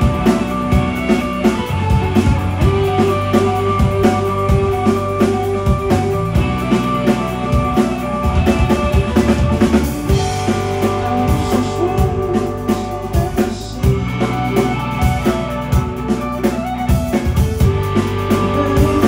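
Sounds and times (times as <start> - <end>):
bass: 0.0 - 19.0
drum kit: 0.0 - 19.0
electric guitars sustained notes: 0.0 - 19.0.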